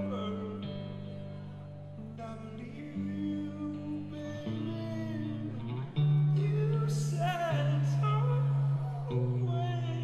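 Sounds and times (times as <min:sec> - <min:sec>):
guitar chords ringing: 0:00.0 - 0:10.0.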